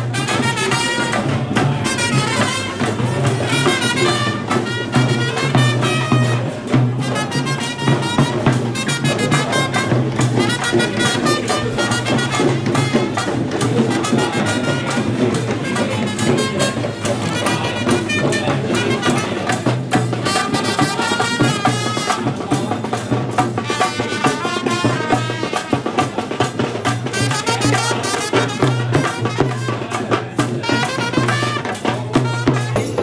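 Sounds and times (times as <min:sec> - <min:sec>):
drums beating steadily: 0:00.0 - 0:33.0.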